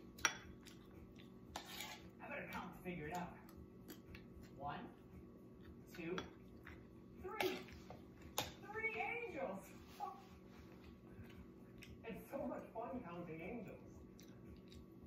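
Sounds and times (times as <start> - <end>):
metal spoon scraping ceramic plate: 1.5 - 2.1.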